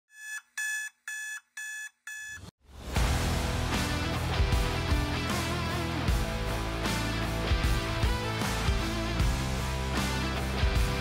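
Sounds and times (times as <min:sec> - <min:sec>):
short electronic beeps: 0:00.1 - 0:02.5
rock music with electric guitar: 0:02.8 - 0:11.0.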